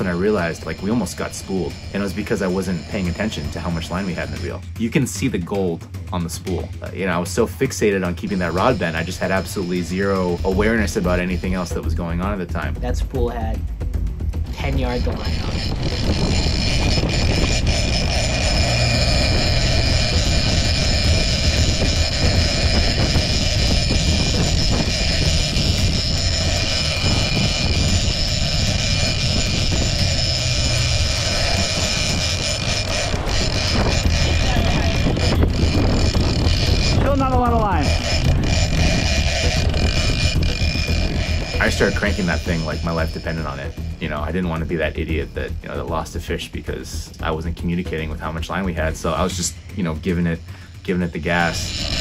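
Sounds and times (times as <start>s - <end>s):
fishing reel cranking: 0.0s - 12.8s, 13.5s - 52.0s
boat engine running: 0.0s - 52.0s
wind: 13.6s - 46.0s, 46.6s - 52.0s.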